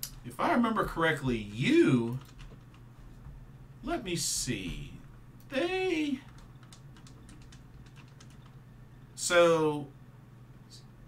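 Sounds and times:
keyboard typing clicks: 0:02.1 - 0:02.8, 0:06.2 - 0:08.6.

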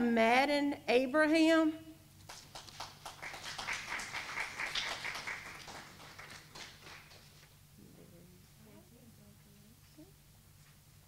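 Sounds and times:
audience applause: 0:02.3 - 0:07.4.

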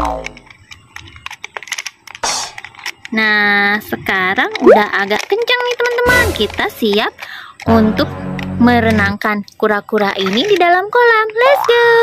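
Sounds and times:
wind-up toy ratchet clicks: 0:00.0 - 0:07.7, 0:09.9 - 0:11.9.

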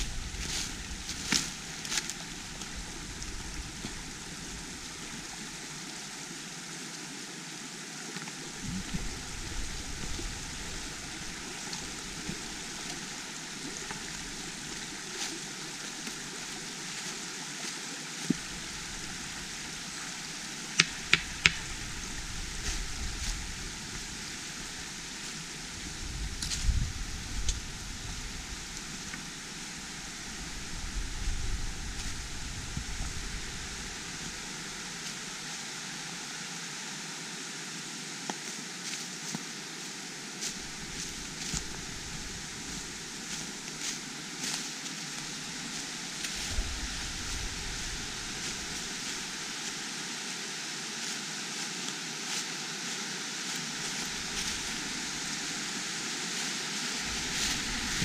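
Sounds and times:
stream rushing over rock: 0:00.0 - 0:58.0.

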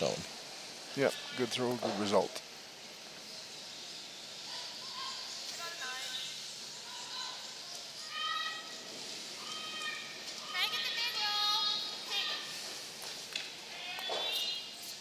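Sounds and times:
arena noise: 0:00.0 - 0:15.0
women shouting long calls: 0:06.8 - 0:12.6.

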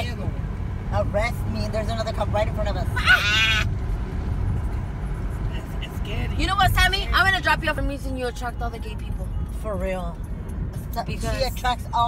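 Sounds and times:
car road rumble inside cabin: 0:00.0 - 0:12.0.

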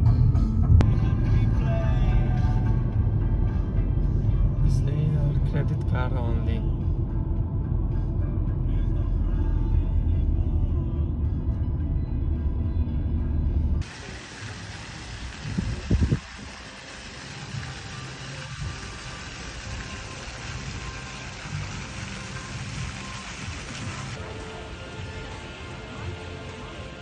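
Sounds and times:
background music: 0:00.0 - 0:27.0
car road rumble: 0:00.0 - 0:27.0
outdoor ambience: 0:00.0 - 0:27.0
wind buffeting microphone: 0:15.2 - 0:16.6.

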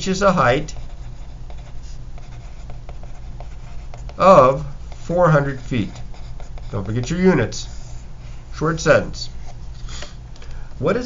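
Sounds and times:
pencil writing on paper: 0:00.3 - 0:08.0.

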